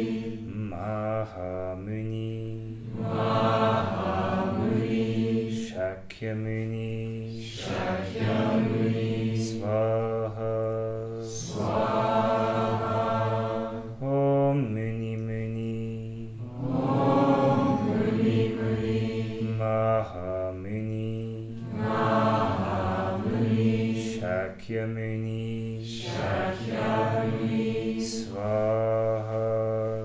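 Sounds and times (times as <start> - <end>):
group of voices chanting: 2.8 - 5.6, 7.5 - 9.5, 11.4 - 14.0, 16.4 - 19.7, 21.6 - 24.4, 26.0 - 29.7.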